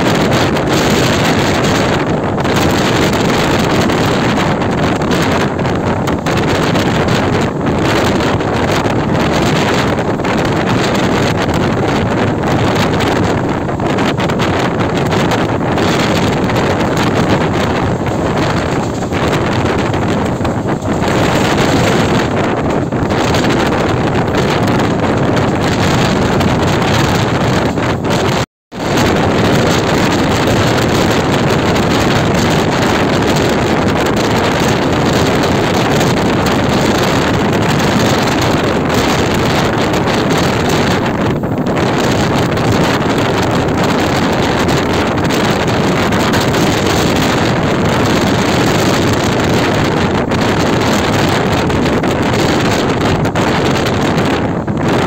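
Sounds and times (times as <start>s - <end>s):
train rumbling at speed: 0.0s - 55.0s
wind buffeting microphone: 0.0s - 55.0s.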